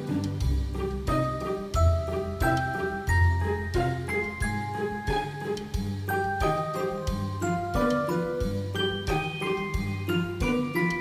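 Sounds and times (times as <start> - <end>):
bell-like melody over bass line: 1.1 - 11.0.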